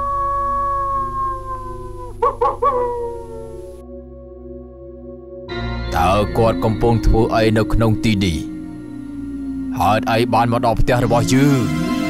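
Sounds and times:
dog howling and yelping: 0.0 - 3.8
ambient music drone: 0.0 - 12.0.

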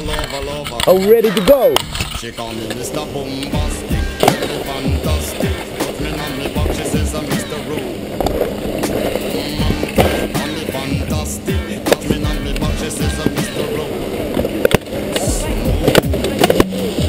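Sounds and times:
music: 0.0 - 17.0
snowboard scraping over snow: 2.3 - 17.0.

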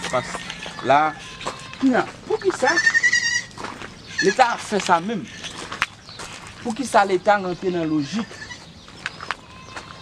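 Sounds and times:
goat bleating: 0.2 - 5.6, 7.9 - 8.6, 9.4 - 10.0
man speaking: 6.6 - 8.4.

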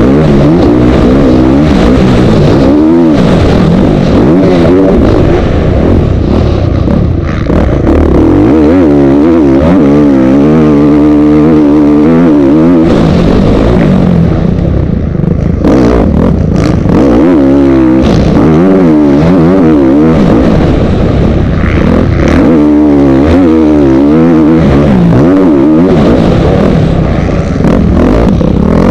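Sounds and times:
motocross bike engine revving: 0.0 - 28.9.

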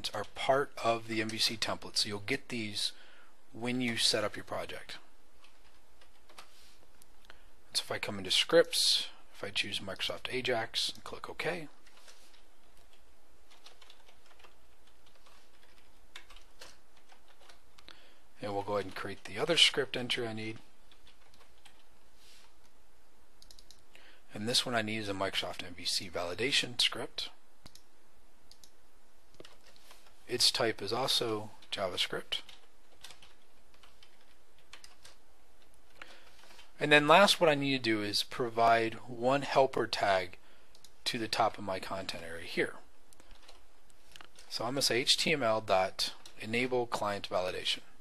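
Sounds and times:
keyboard typing: 5.4 - 6.5, 11.8 - 17.9, 20.6 - 21.9, 23.4 - 23.8, 28.5 - 30.2, 32.4 - 36.7, 43.1 - 44.5.

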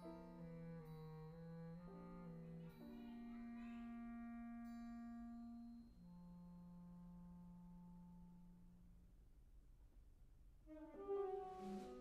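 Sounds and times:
wind band holding soft notes: 10.6 - 12.0.

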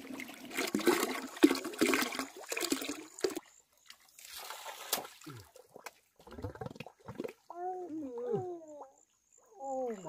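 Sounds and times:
wet splashy sounds: 0.0 - 7.5.

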